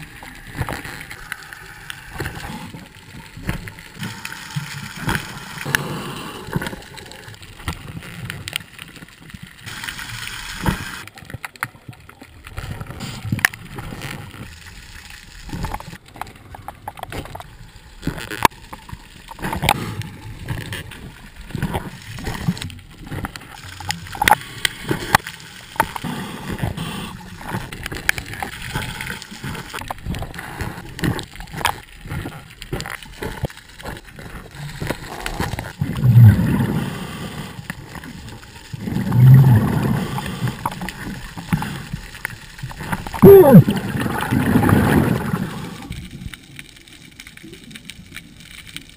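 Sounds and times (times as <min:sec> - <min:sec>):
low underwater rumbling: 0:15.3 - 0:46.6
faint clicks and knocks: 0:15.5 - 0:26.0
diver's exhaled bubbles rumbling: 0:34.1 - 0:41.8, 0:42.6 - 0:45.9.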